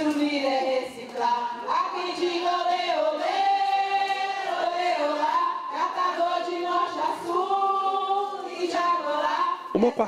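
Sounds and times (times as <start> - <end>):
group singing unaccompanied: 0.0 - 10.0.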